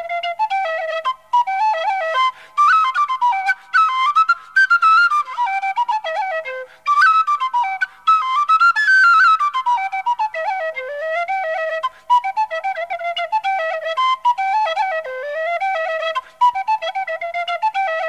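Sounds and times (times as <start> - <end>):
flute playing a lively dance tune: 0.0 - 18.0.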